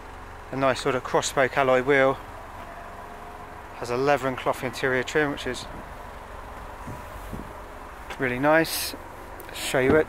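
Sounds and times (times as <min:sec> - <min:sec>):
low outdoor rumble: 0:00.0 - 0:10.0
soft thuds: 0:06.6 - 0:08.2.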